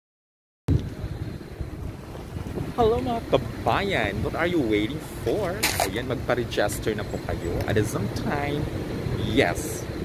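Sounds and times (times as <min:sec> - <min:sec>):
wind buffeting microphone: 0:00.7 - 0:10.0
man speaking: 0:02.7 - 0:09.9.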